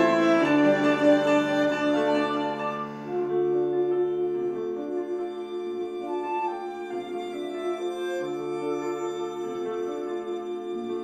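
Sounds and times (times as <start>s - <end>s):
chamber quartet playing: 0.0s - 11.0s.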